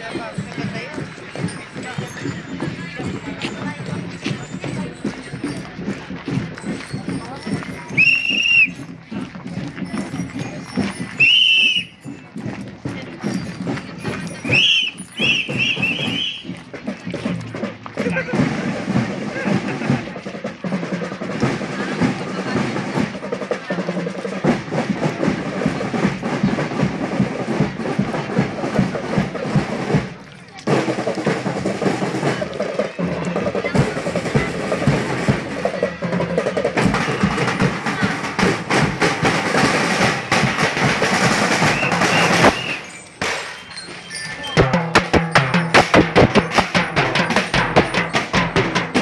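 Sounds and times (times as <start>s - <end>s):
bass drum beats: 0.0s - 43.6s, 44.5s - 49.0s
snare drum rolls: 13.3s - 49.0s.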